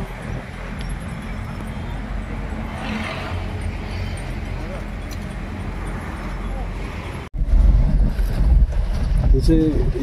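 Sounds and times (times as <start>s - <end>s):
wind on microphone: 6.8s - 10.0s.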